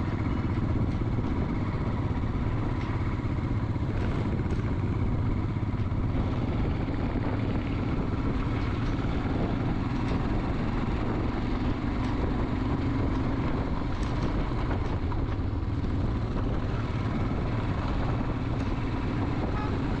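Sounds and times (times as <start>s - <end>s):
motorcycle engine cruising: 0.0s - 20.0s
wind noise on microphone: 0.0s - 20.0s.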